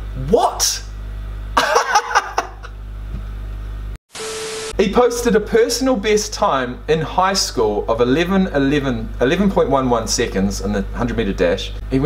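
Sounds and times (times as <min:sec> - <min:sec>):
low electrical hum: 0:00.0 - 0:04.0, 0:04.6 - 0:12.0
man laughing: 0:01.6 - 0:02.8.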